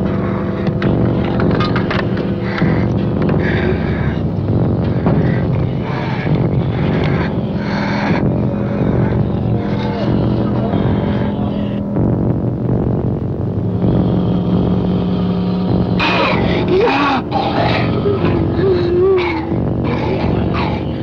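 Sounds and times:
low held music tones: 0.0s - 21.0s
steady rushing noise: 0.0s - 21.0s
wavering moan-like sound: 0.0s - 21.0s.

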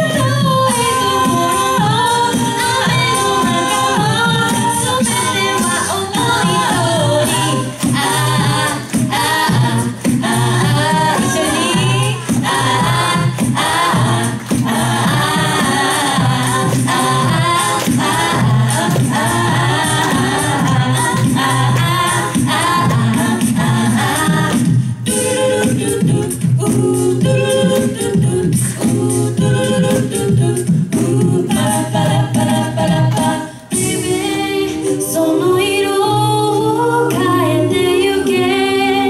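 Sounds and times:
a cappella group singing: 0.0s - 39.0s.

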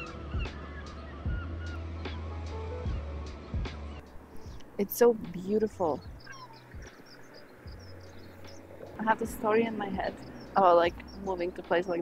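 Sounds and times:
birds chirping: 0.0s - 12.0s
wind buffeting microphone: 4.2s - 12.0s.

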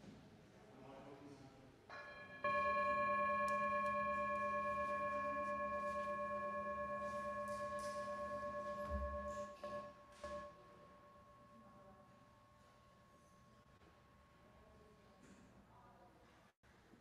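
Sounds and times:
singing bowl struck and ringing: 1.9s - 10.6s.

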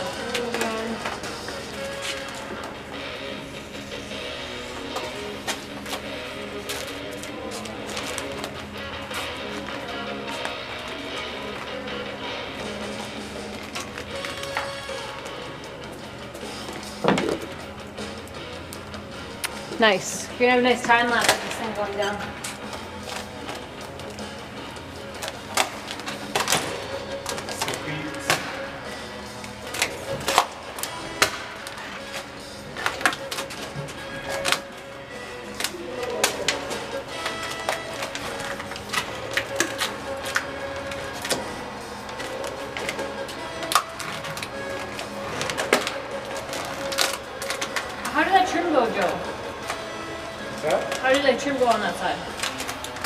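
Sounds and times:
background music: 0.0s - 53.0s.

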